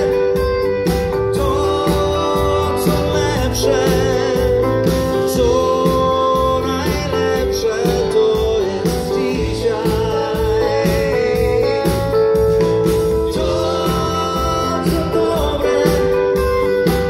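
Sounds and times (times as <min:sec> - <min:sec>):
pop band playing a ballad: 0:00.0 - 0:17.0
voice singing with vibrato: 0:00.0 - 0:17.0.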